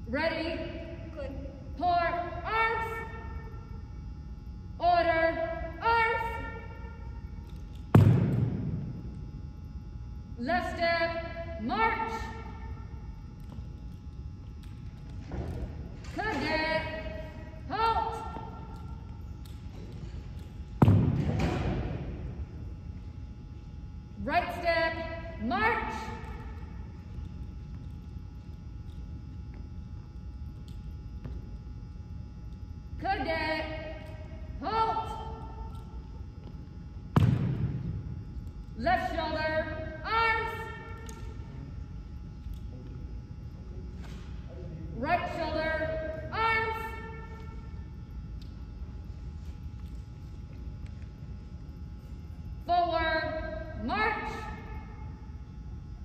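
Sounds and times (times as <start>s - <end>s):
person shouting commands: 16.2s - 18.6s.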